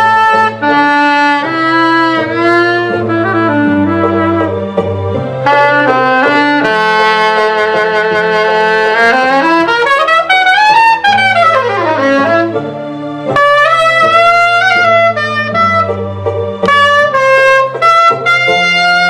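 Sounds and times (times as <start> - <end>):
backing track of bass and chords: 0.0 - 19.0
saxophone melody: 0.0 - 19.0.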